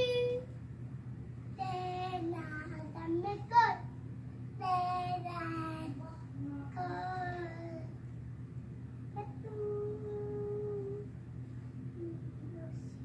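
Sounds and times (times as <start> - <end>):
girl singing: 1.6 - 3.9, 4.6 - 8.0, 9.2 - 11.1.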